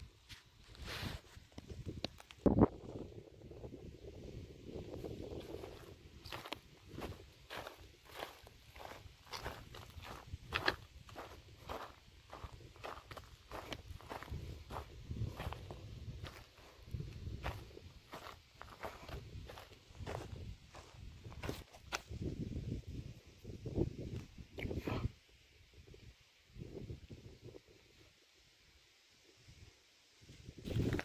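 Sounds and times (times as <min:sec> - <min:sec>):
footsteps crunching on dry grass: 0:04.8 - 0:22.3.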